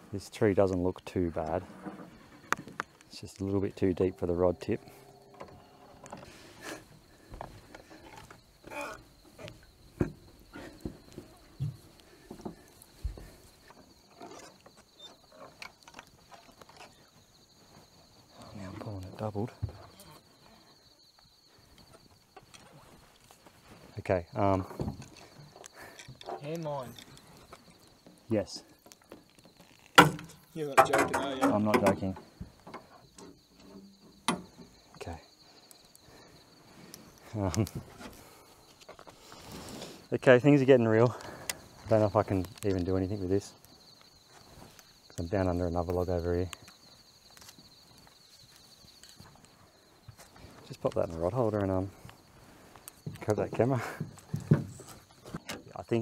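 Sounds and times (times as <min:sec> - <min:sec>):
higher insect trill: 0:00.0 - 0:56.0
insects trilling: 0:00.0 - 0:56.0.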